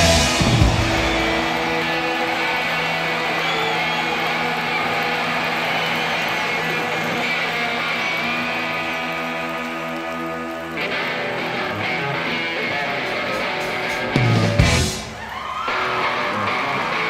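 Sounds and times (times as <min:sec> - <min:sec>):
electric guitars ringing chords: 0:00.0 - 0:15.1.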